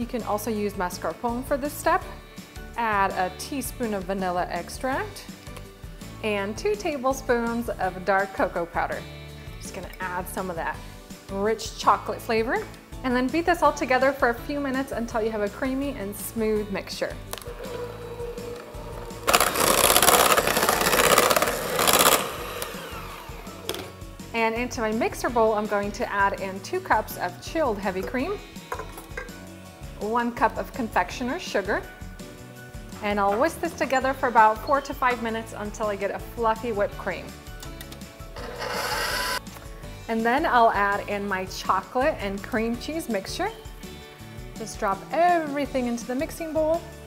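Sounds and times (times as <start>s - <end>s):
background music: 0.0s - 47.0s
electric hand mixer running: 17.4s - 24.0s, 38.4s - 39.4s.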